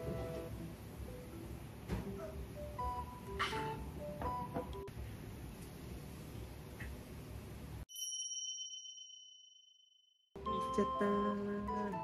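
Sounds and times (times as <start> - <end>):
bell-like ding: 7.9 - 10.8.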